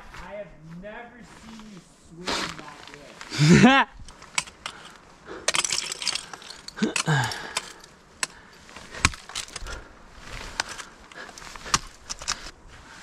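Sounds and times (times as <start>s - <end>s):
ice crunching and breaking: 2.3s - 12.6s
person laughing and sighing: 3.3s - 4.0s, 6.4s - 7.9s
metal gear jingling: 4.1s - 9.8s
ice tool picks striking ice: 4.2s - 9.6s.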